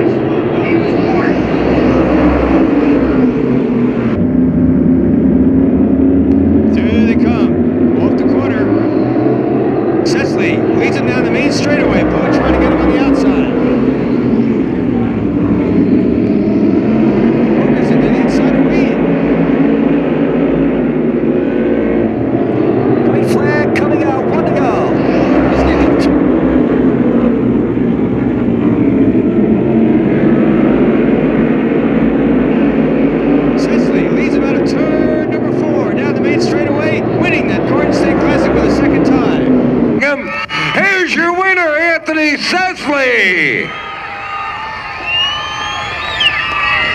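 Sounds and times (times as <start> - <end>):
race car engines droning: 0.0 - 46.9.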